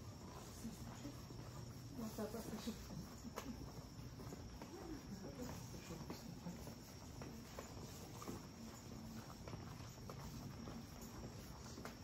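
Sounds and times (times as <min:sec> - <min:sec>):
footsteps on stone paving: 0:00.0 - 0:12.0.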